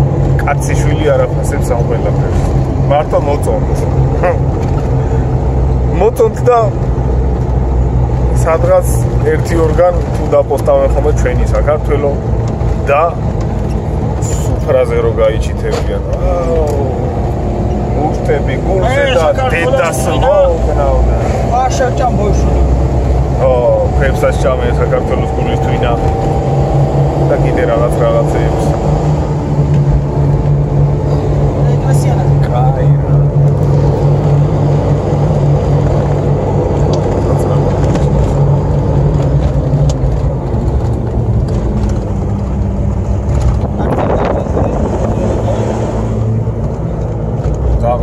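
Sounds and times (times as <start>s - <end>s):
car engine and road noise: 0.0s - 48.0s.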